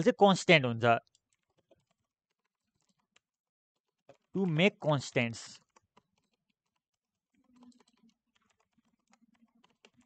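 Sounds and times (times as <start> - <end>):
faint keyboard typing: 1.0 - 10.0.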